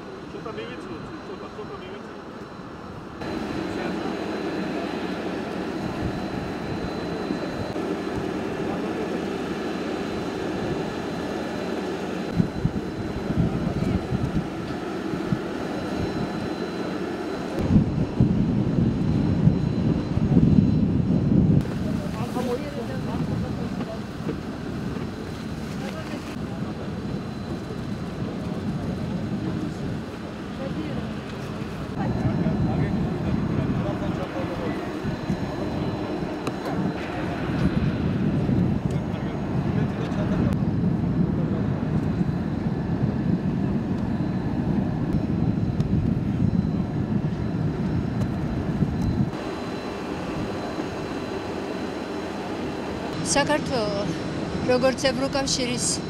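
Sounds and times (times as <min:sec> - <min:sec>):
jet airliner engine hum with whine: 0:00.0 - 0:56.0
low rumbling gusts: 0:02.6 - 0:56.0.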